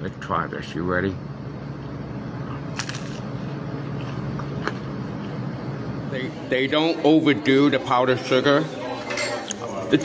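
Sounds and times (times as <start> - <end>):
low background hum: 0.0 - 10.0
crunching bite of pizza crust: 2.4 - 4.6
chewing: 3.9 - 4.7.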